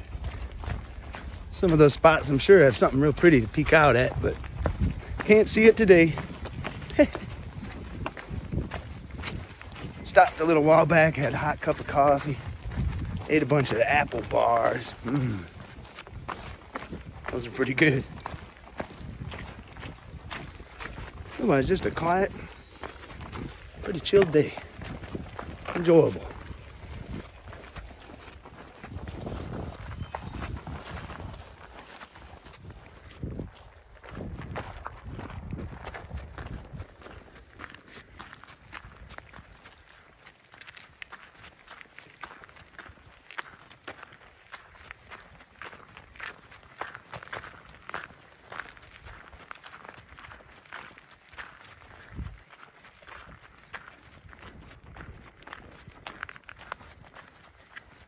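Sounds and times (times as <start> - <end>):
footsteps crunching on trail: 0.0 - 58.0.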